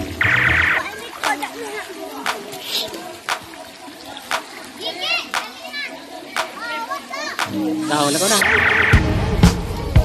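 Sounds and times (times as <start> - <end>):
sharp clap-like beat: 1.2 - 1.4, 2.2 - 2.6, 3.2 - 3.5, 4.3 - 4.6, 5.3 - 5.6, 6.3 - 6.6, 7.4 - 7.6
children shouting and squealing: 4.7 - 7.5.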